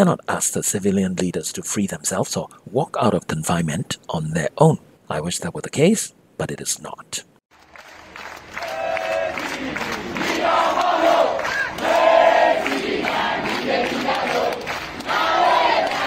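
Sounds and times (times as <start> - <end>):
crowd noise: 8.2 - 16.0
crowd singing together: 8.6 - 16.0.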